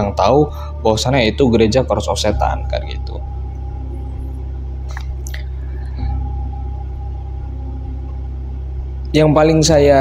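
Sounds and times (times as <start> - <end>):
dark ambient drone music: 0.0 - 10.0.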